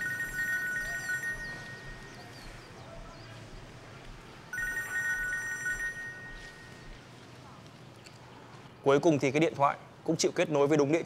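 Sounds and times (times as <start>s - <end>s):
mobile phone ringing: 0.0s - 2.3s, 4.5s - 6.9s.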